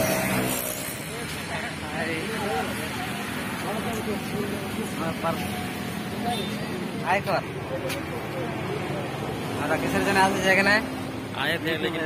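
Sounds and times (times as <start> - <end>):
road traffic rumble: 0.0 - 12.0
voices talking: 1.1 - 12.0.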